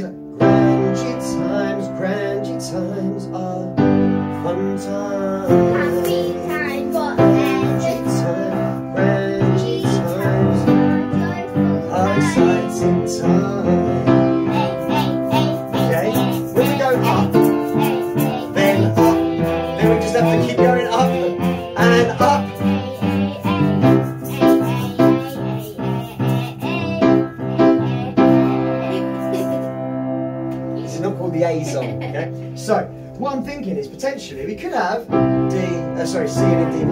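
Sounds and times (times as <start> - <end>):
piano chords: 0.0 - 36.9.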